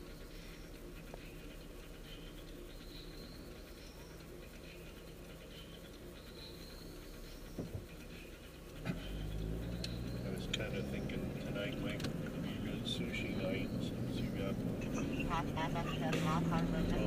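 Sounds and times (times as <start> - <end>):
car engine hum: 0.0 - 17.0
road noise: 0.0 - 17.0.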